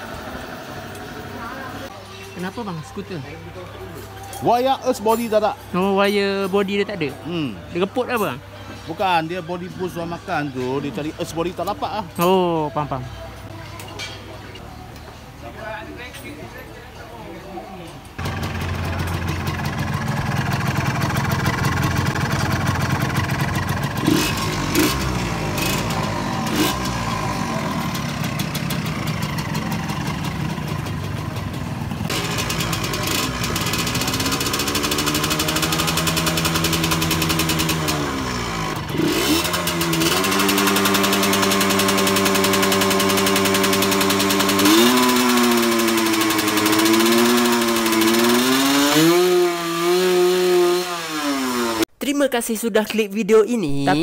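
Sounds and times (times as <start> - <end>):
motorcycle engine revving: 18.2 - 51.9.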